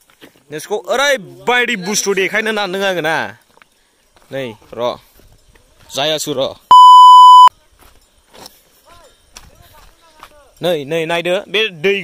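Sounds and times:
electronic censor bleep: 0:06.7 - 0:07.5.

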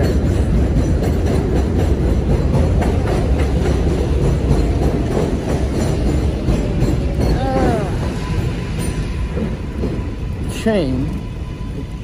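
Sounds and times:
subway train rumbling past: 0:00.0 - 0:12.0.

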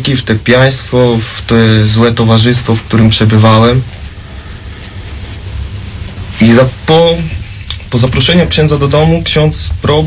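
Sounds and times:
background hiss: 0:00.0 - 0:10.0
low hum: 0:00.2 - 0:10.0.

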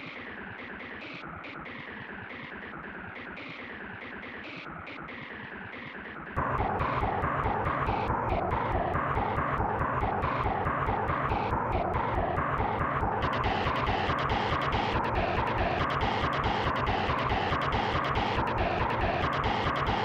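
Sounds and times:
distorted remix music with beat: 0:00.0 - 0:20.0.

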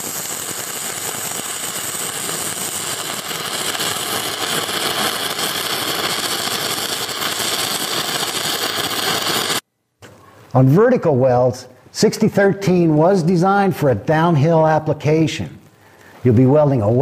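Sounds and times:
welding arc crackle and hiss: 0:00.0 - 0:17.0.

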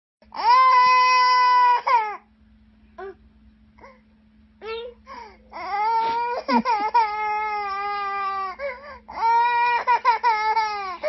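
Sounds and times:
toddler crying: 0:00.3 - 0:02.2, 0:05.5 - 0:11.0.

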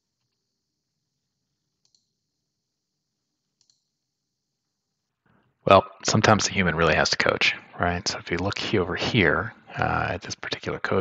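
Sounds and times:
faint computer mouse clicks: 0:01.8 - 0:02.1, 0:03.6 - 0:03.8.

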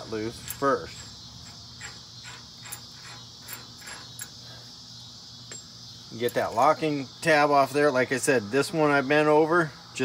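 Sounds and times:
insects chirring: 0:00.0 - 0:10.0.

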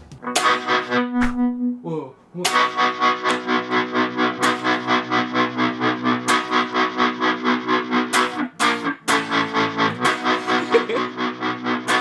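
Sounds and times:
distorted electric guitar chords: 0:00.2 - 0:01.8, 0:02.4 - 0:12.0.

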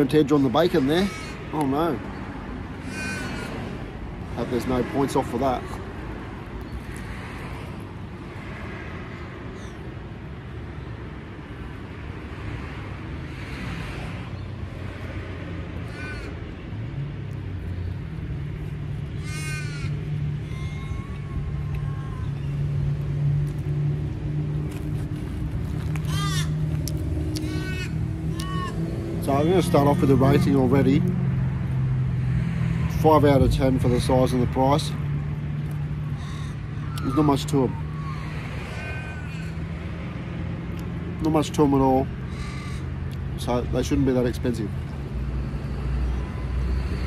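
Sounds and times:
crows cawing: 0:00.6 - 0:02.0, 0:02.7 - 0:04.5, 0:15.8 - 0:16.6, 0:19.1 - 0:22.5, 0:25.8 - 0:30.8, 0:35.9 - 0:40.2, 0:42.2 - 0:43.1.

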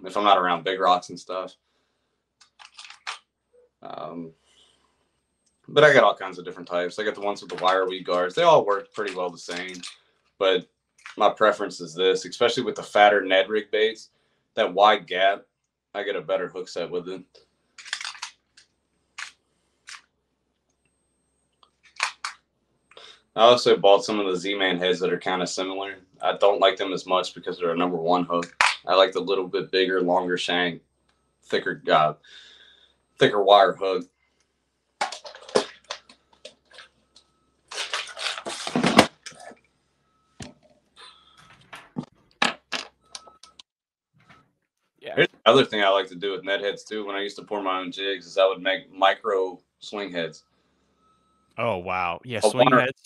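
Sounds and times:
tackle box clicking rattles: 0:02.4 - 0:03.2.

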